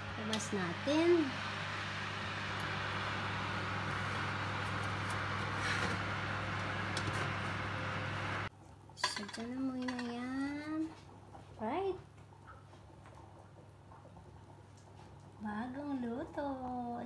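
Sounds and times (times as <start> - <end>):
oven convection fan humming: 0.0 - 11.0.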